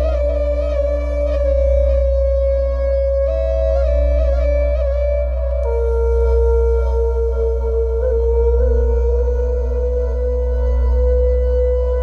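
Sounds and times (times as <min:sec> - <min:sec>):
low steady drone: 0:05.2 - 0:12.0.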